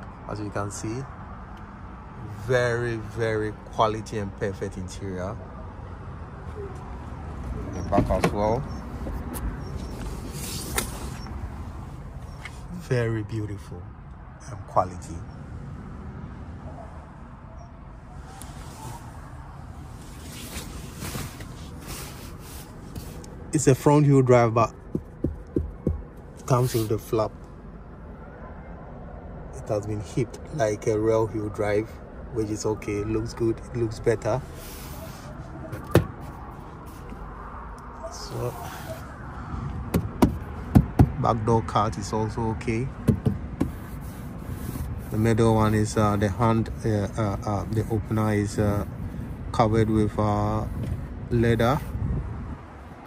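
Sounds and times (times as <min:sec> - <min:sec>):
hand rubbing leather seat: 0:07.7 - 0:12.7, 0:19.9 - 0:23.3, 0:24.8 - 0:27.2, 0:43.1 - 0:47.3
clothing rustling: 0:20.0 - 0:23.2
knocking on car door panel: 0:24.8 - 0:26.1, 0:39.9 - 0:41.2, 0:43.0 - 0:43.8.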